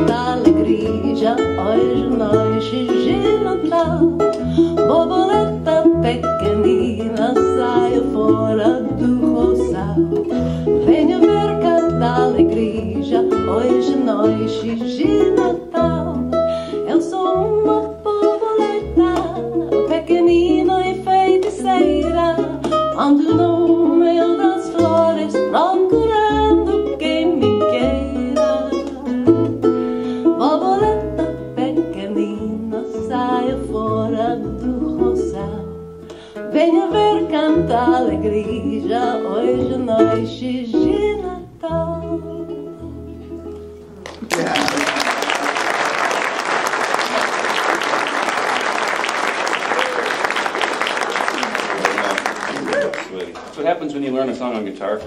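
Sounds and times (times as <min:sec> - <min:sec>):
woman singing: 0:00.0 - 0:29.5, 0:30.2 - 0:43.4
plucked double bass line: 0:00.0 - 0:44.6
ukulele playing: 0:00.0 - 0:53.5.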